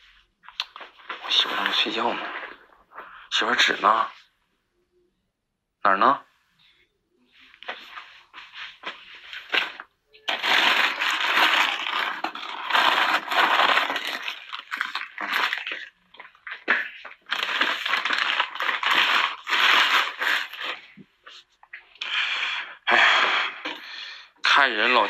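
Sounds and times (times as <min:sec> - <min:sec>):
rustling handling noise: 0:07.3 - 0:21.9.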